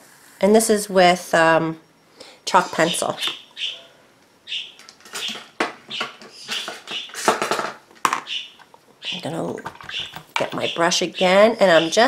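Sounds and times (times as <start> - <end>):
bird chirping and squawking: 2.6 - 7.5, 8.1 - 12.0.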